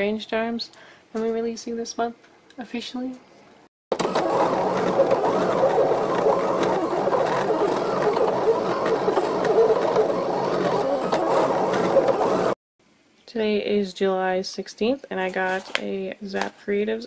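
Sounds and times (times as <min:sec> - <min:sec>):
cutting machine motors whirring: 0:03.9 - 0:12.6.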